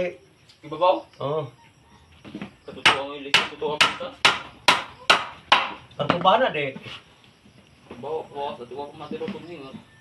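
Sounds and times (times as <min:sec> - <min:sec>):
hammer driving nails into wood: 0:02.8 - 0:05.8.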